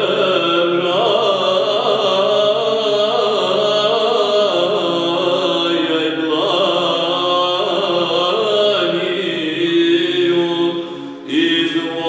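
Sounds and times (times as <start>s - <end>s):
men singing chant: 0.0s - 12.0s.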